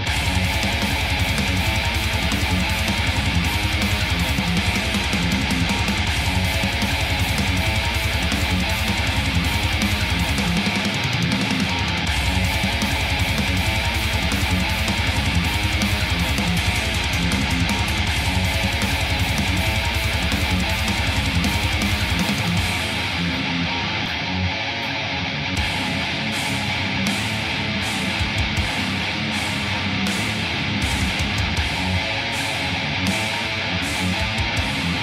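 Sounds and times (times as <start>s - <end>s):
heavy metal music: 0.0s - 35.0s.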